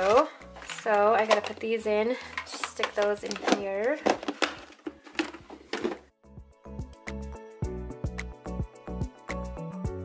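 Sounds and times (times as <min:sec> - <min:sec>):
plastic packets rustling: 0:00.0 - 0:06.1
background music with steady beat: 0:04.2 - 0:10.0.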